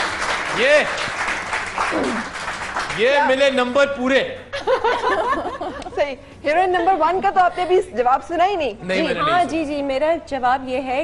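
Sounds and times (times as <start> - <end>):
audience applauding: 0.0 - 3.8.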